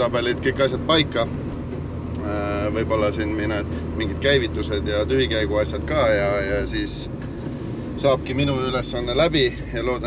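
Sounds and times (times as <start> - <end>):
car engine drone: 0.0 - 10.0
road noise inside car: 0.0 - 10.0.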